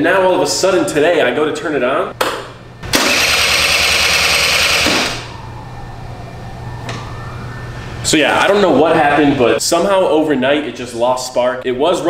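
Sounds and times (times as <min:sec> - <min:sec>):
scooter starter cranking engine: 0:02.8 - 0:05.3.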